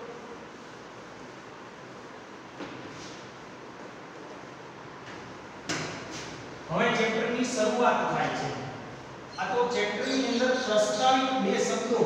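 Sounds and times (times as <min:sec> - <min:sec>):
man talking: 0:06.7 - 0:08.8, 0:09.4 - 0:12.0.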